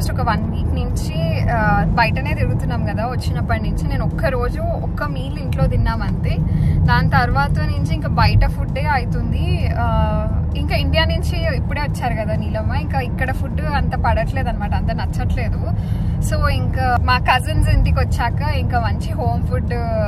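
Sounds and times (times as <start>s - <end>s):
car cabin rumble: 0.0s - 20.0s
woman talking: 0.0s - 20.0s.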